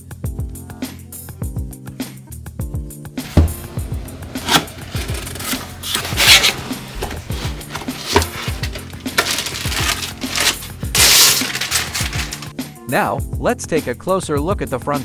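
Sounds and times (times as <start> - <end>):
background music: 0.0 - 15.0
cardboard and plastic rustling: 3.2 - 12.5.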